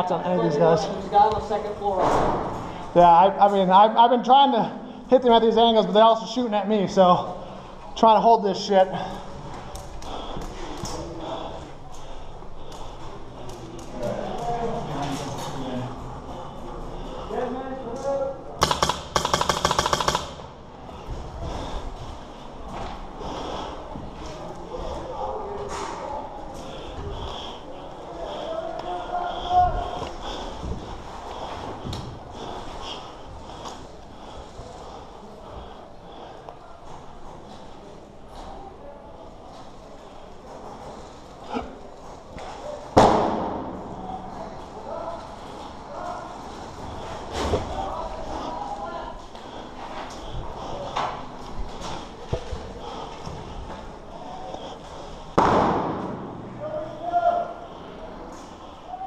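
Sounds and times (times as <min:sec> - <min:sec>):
faint voices: 0:06.3 - 0:18.9, 0:20.4 - 0:59.0
sharp knocks in bare room: 0:55.4 - 0:56.3.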